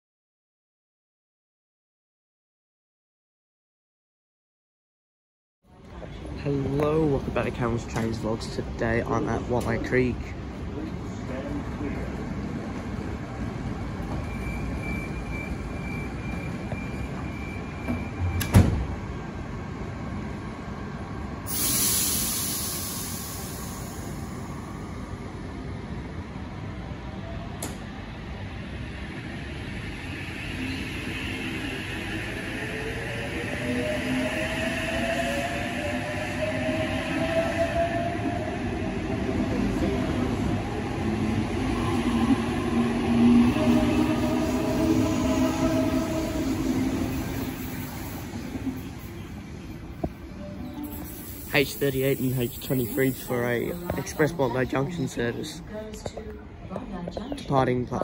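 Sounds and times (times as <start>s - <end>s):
train doors shutting: 13.9s - 19.1s, 21.5s - 24.6s, 27.4s - 28.1s
air hiss: 21.5s - 24.3s, 50.8s - 53.8s.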